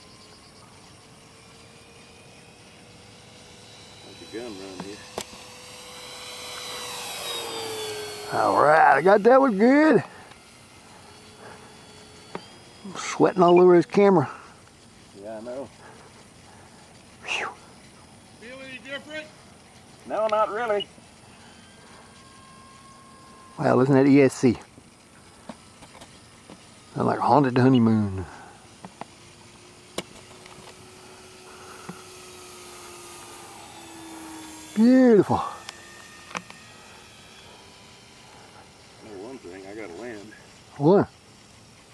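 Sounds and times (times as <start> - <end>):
background hiss: 0.0 - 41.9
model plane motor hum: 0.0 - 41.9.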